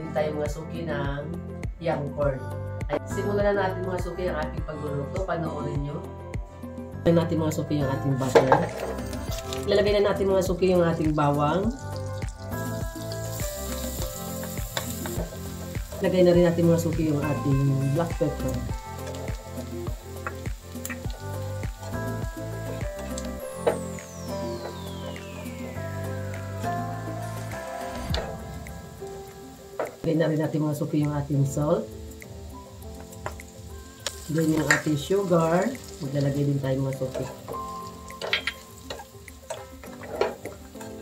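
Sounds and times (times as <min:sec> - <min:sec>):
background music with beat: 0:00.0 - 0:07.1, 0:07.8 - 0:30.1, 0:31.0 - 0:35.0, 0:36.9 - 0:41.0
garlic sizzling in a pan: 0:08.2 - 0:41.0
sauce bubbling: 0:11.6 - 0:25.8.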